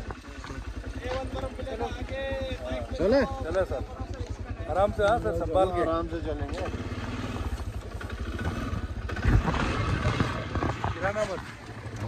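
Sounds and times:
quad bike engine at low revs: 0.0s - 12.0s.

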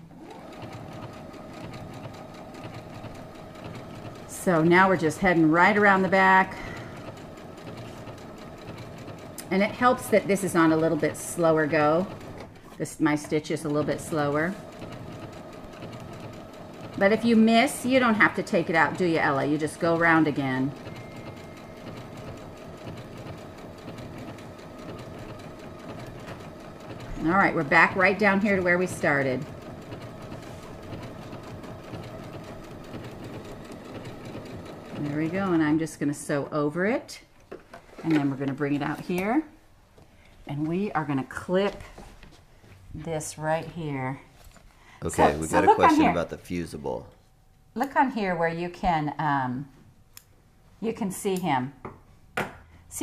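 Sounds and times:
sewing machine running: 0.0s - 36.0s, 45.0s - 46.6s.

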